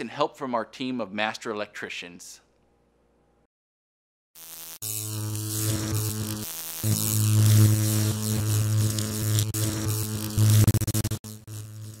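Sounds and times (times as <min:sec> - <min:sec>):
electrical hum and buzz: 0:04.4 - 0:12.0.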